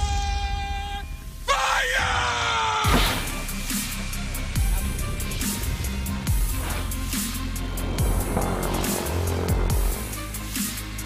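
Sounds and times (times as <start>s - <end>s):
person yelling: 1.5s - 3.0s.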